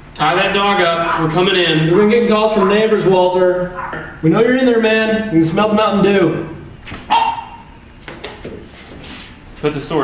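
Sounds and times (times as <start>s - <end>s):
dog barking: 0.8s - 1.8s, 2.5s - 3.1s, 3.7s - 4.2s, 7.1s - 7.8s.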